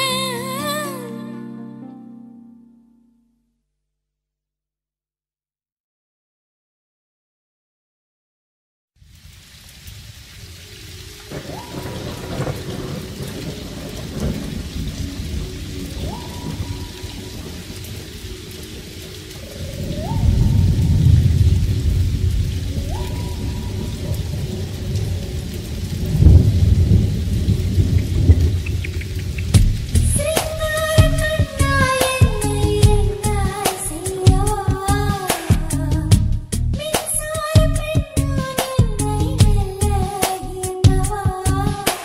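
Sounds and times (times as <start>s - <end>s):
rain hissing: 9.0s - 42.0s
low rolls of thunder: 9.9s - 33.2s.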